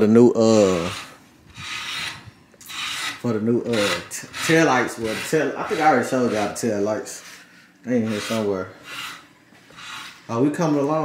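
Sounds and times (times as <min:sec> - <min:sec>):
hand sanding strokes: 0:00.5 - 0:11.0.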